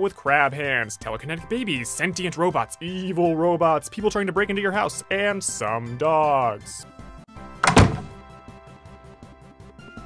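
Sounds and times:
background music: 0:00.0 - 0:10.0
door swinging shut: 0:07.6 - 0:08.2.

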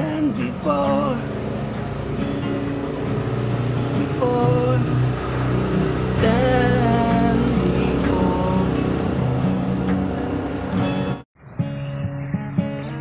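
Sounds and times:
acoustic guitar chords: 0:00.0 - 0:13.0.

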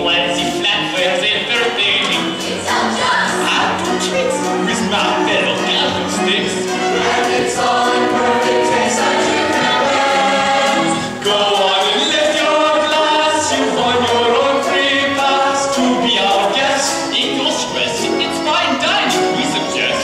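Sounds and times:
ensemble singing together: 0:00.0 - 0:20.0
musical accompaniment: 0:00.0 - 0:20.0.

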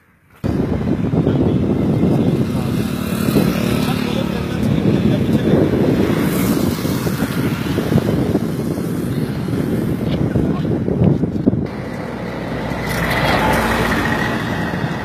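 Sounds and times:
road traffic: 0:00.0 - 0:15.0
wind buffeting microphone: 0:00.3 - 0:15.0.

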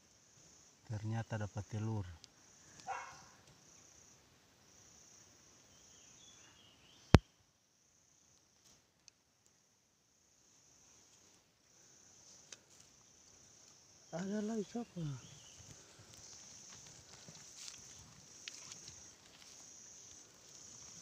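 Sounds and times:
insects trilling: 0:00.0 - 0:08.7, 0:09.4 - 0:21.0.

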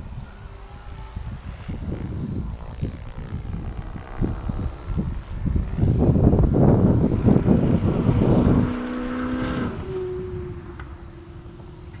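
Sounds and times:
faint propeller drone: 0:00.0 - 0:12.0
wind buffeting microphone: 0:00.0 - 0:12.0.

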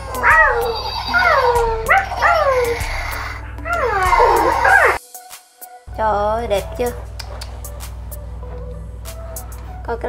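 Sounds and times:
toy electronic animal calls: 0:00.0 - 0:05.0
toy motor hum: 0:00.0 - 0:05.0.

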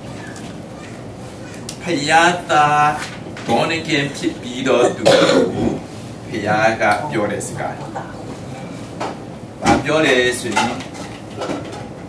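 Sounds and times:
man speaking: 0:04.0 - 0:08.0.

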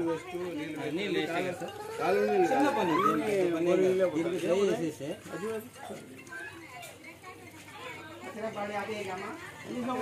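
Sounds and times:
faint background voices talking: 0:00.0 - 0:10.0.

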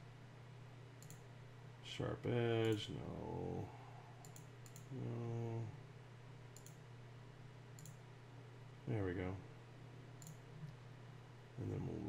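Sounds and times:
low steady hum: 0:00.0 - 0:12.0
faint computer mouse click: 0:01.0 - 0:01.2, 0:04.2 - 0:04.9, 0:06.6 - 0:06.8, 0:07.8 - 0:08.0, 0:10.2 - 0:10.8.

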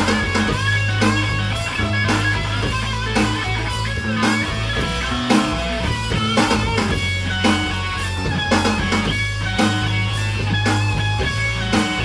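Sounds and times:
electric guitar lead notes: 0:00.0 - 0:12.0
sustained bass: 0:00.0 - 0:12.0.

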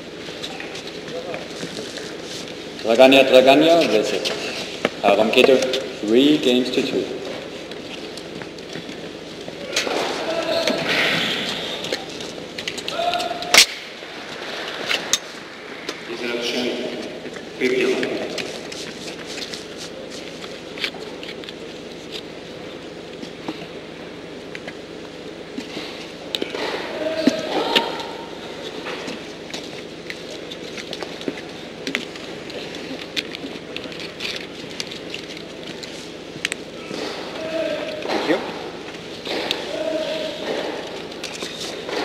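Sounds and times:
steady background hum: 0:00.0 - 0:42.0.

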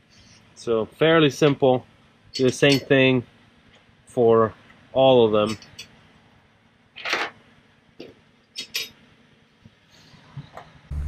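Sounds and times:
washers and bolts clinking on metal: 0:02.3 - 0:03.1, 0:05.4 - 0:06.0, 0:07.0 - 0:07.4, 0:08.6 - 0:09.0.

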